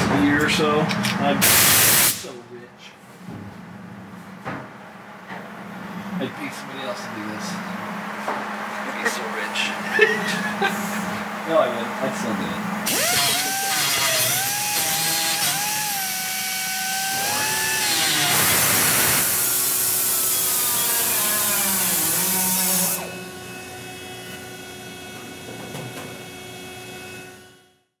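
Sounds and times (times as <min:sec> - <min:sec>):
pneumatic grinder whining: 0:12.8 - 0:24.5
grinder cutting into steel: 0:12.9 - 0:23.1.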